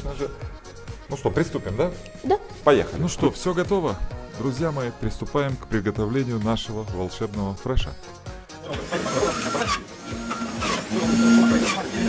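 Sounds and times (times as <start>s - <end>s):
background music: 0.0s - 12.0s
electric juicer motor hum: 8.7s - 12.0s.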